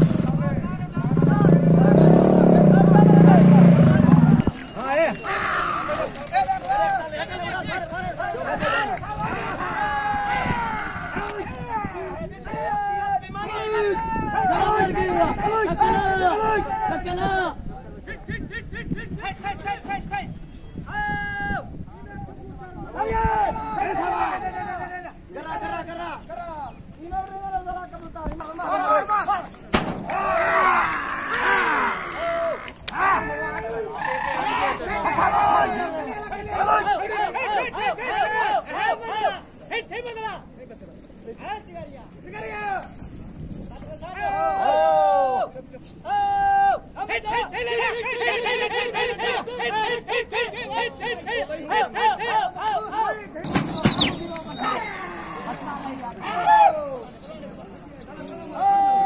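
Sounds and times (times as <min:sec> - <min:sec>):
motorcycle engine running: 0:00.0 - 0:04.6
outdoor crowd: 0:00.0 - 0:59.0
people shouting: 0:02.0 - 0:17.3, 0:23.0 - 0:25.9, 0:28.6 - 0:40.3, 0:44.2 - 0:45.5, 0:46.1 - 0:57.1, 0:58.5 - 0:59.0
sharp bang: 0:29.7 - 0:30.2.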